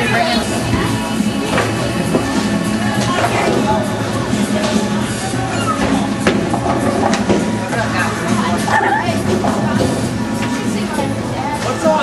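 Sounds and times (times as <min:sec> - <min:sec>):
crowd chatter: 0:00.0 - 0:12.0
loud background music: 0:00.0 - 0:12.0.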